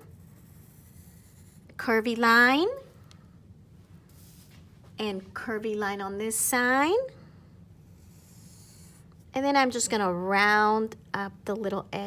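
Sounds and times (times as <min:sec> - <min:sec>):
pencil scratching on paper: 0:00.0 - 0:01.8, 0:07.8 - 0:09.1
low steady hum: 0:00.0 - 0:12.0.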